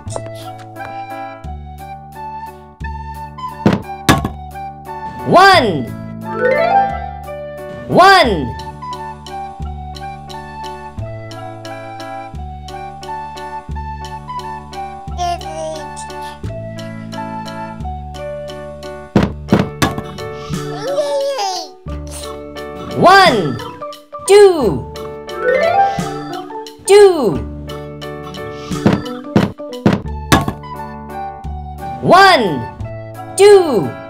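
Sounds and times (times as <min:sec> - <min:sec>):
light children's music: 0:00.0 - 0:34.0
sharp thunk sound effect: 0:03.6 - 0:04.4, 0:19.2 - 0:20.2, 0:28.7 - 0:30.6.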